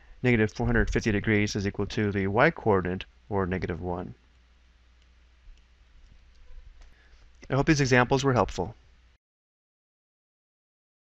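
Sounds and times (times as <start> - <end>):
room hiss: 0.0 - 9.2.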